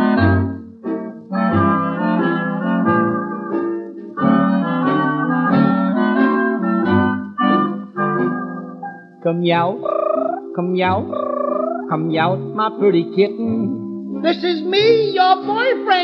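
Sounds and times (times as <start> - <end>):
instrumental band music: 0.0 - 9.2.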